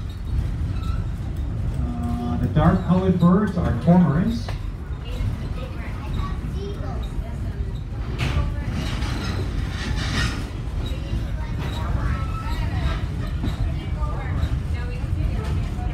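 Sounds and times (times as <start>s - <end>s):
train coach rumble: 0.0s - 15.9s.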